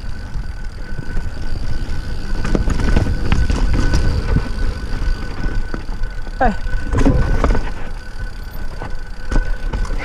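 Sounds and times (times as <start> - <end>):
bike clicks and rattles: 0.0 - 10.0
wind and tyre rumble: 0.0 - 10.0.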